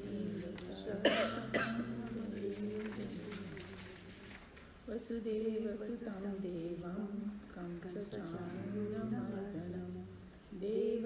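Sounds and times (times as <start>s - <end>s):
person coughing: 1.0s - 2.0s.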